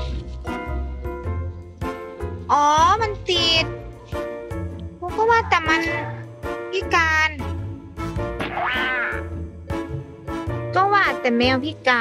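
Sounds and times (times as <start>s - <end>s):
background music with steady tones: 0.0s - 12.0s.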